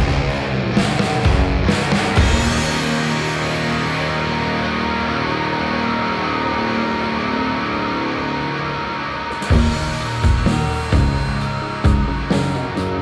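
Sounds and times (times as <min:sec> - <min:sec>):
ringing held guitar notes: 0:00.0 - 0:13.0.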